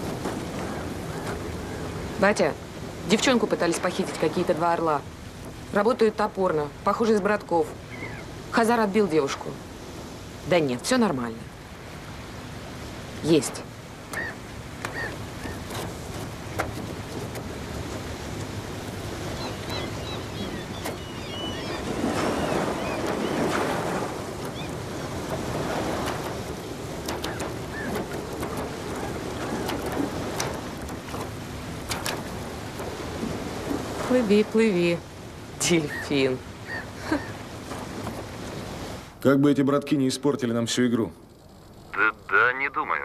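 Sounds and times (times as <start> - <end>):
sea waves: 0.0 - 39.2, 40.5 - 43.0
wind: 0.0 - 43.0.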